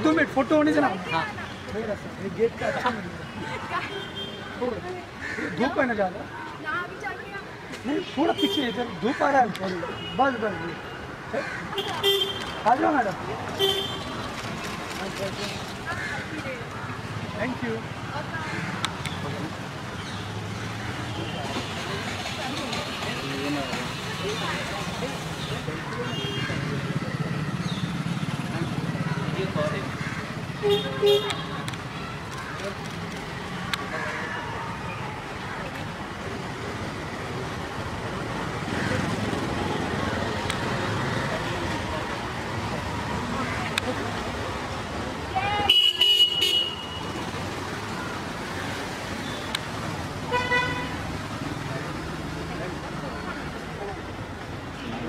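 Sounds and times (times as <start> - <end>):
street traffic hum: 0.0 - 55.0
vehicle horn tooting: 45.6 - 47.2, 50.3 - 51.0.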